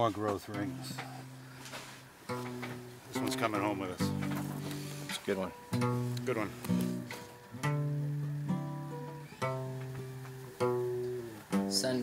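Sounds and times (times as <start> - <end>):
acoustic guitar chords strummed: 0.0 - 12.0.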